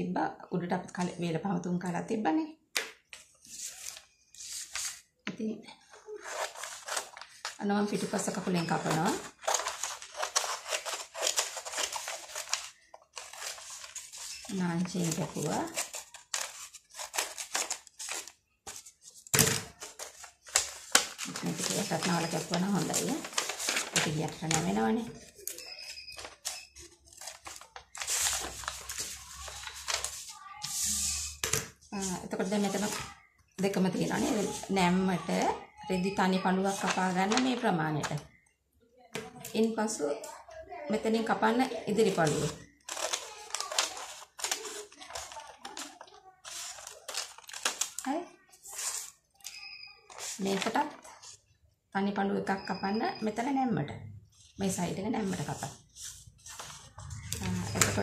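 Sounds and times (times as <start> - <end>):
paper rustling and crinkling: 3.1 - 5.1, 5.8 - 33.2, 34.0 - 35.4, 36.6 - 38.2, 41.9 - 51.4, 54.3 - 58.0
person talking: 21.3 - 23.3.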